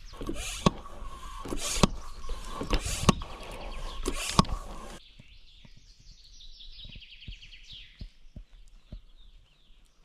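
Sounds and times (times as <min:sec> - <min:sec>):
electric pump motor hum: 0:00.0 - 0:05.0
sharp pump click: 0:00.1 - 0:05.0.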